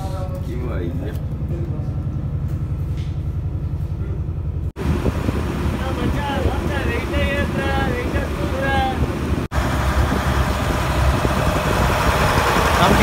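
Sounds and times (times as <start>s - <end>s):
boat engine chugging: 0.0s - 13.0s
quayside voices: 5.4s - 9.5s.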